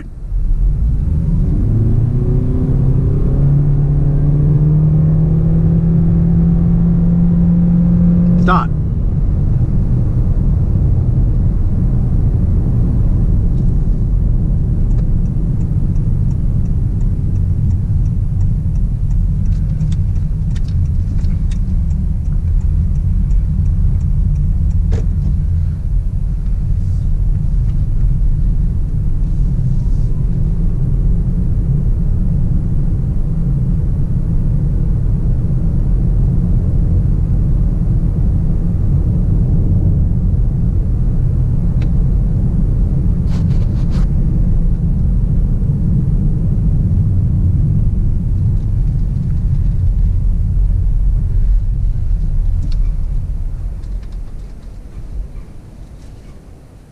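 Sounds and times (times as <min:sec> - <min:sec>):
tyre and road noise: 0:00.0 - 0:34.3, 0:35.0 - 0:56.9.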